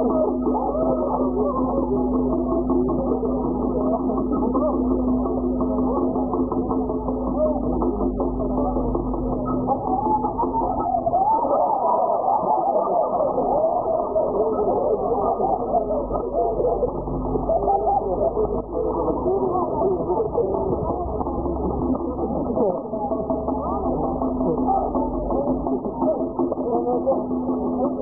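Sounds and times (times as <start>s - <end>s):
muffled music: 0.0s - 28.0s
muffled voices: 0.0s - 28.0s
steady low hum: 0.0s - 28.0s.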